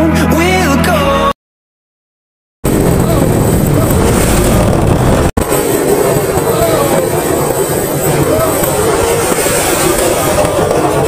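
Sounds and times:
wind rushing over microphone: 2.6 - 11.0.

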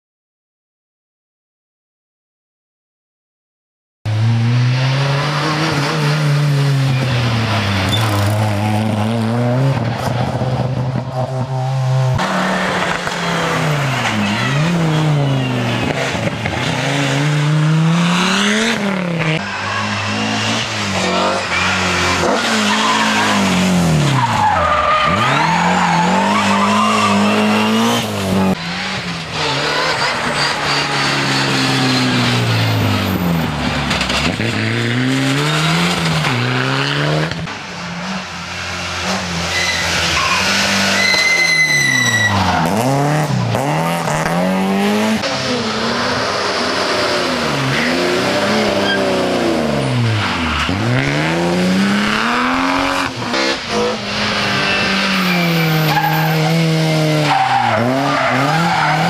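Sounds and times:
rally car engines revving: 4.1 - 59.0
tyres squealing: 19.4 - 28.0, 39.4 - 42.9.

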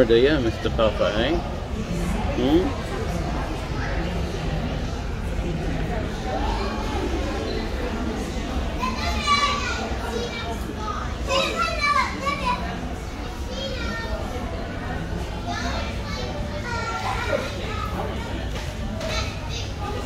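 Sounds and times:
children calling and chattering: 0.0 - 20.0.

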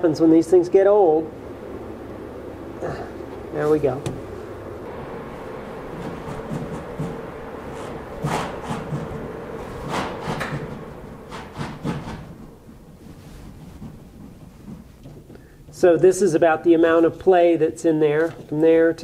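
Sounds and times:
heater humming: 0.0 - 19.0.

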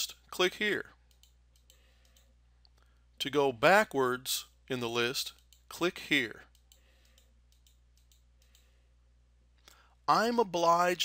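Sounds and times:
steady low hum: 0.0 - 11.0
computer mouse clicks: 1.1 - 2.3, 6.5 - 8.7.

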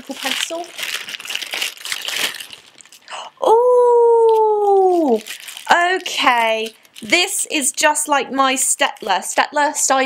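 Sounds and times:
packaging rustle: 0.0 - 3.1, 4.3 - 7.5
woman's drawn-out vocal ooh: 3.1 - 5.2.

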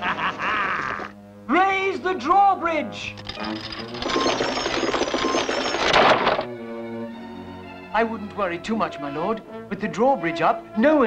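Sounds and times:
background music: 0.0 - 11.0
drawbridge mechanical rattling: 3.1 - 6.5.

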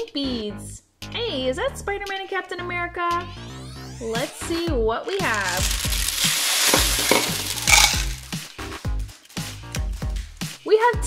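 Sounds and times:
plastic beads pouring onto table: 5.1 - 8.8.

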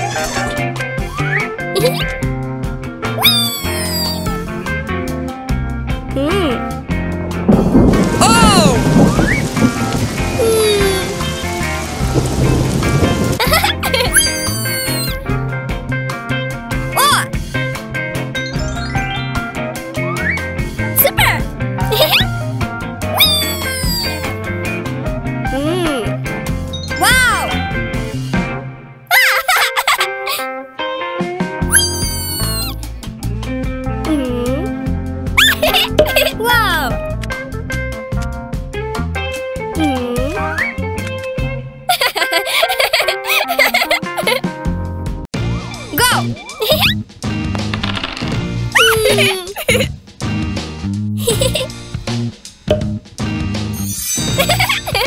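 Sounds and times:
background music: 0.0 - 55.0
cartoon cat meowing: 1.8 - 2.1, 3.2 - 4.3, 13.6 - 15.2, 17.0 - 17.3, 23.1 - 24.3, 27.0 - 27.6, 31.6 - 32.8, 35.4 - 37.0, 48.8 - 49.8
thunder rumble: 7.3 - 14.7
steady rain: 7.5 - 14.6.

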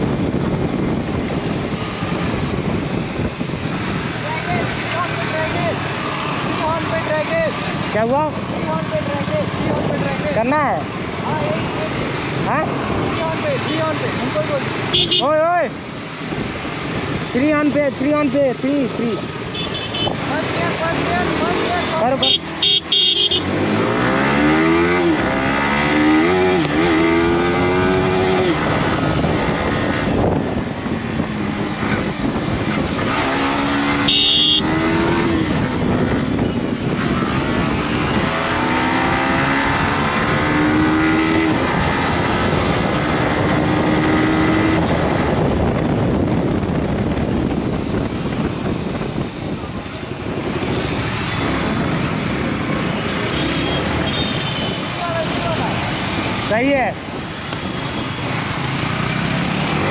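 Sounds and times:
wind and road noise: 0.0 - 59.9
motorcycle engine accelerating: 23.1 - 49.1.

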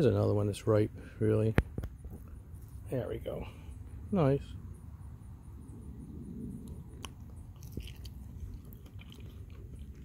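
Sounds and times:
person chewing soft fruit: 6.4 - 10.0.

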